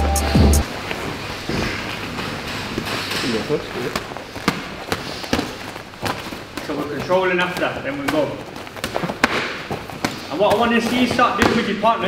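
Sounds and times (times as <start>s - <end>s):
people talking: 3.2s - 4.0s, 6.6s - 8.5s, 10.3s - 12.0s
boxing gloves thudding and slapping: 3.8s - 12.0s.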